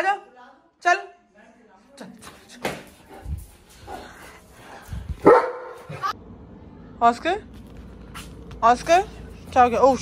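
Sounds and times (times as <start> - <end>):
dog barking loudly: 5.2 - 5.9.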